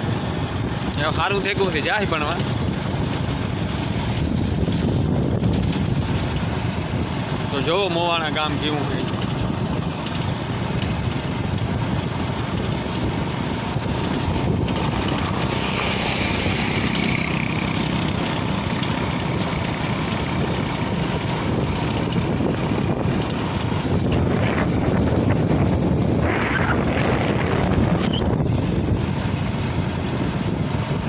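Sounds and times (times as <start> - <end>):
vehicle road and engine noise: 0.0 - 31.0
wind rush on microphone: 0.0 - 31.0.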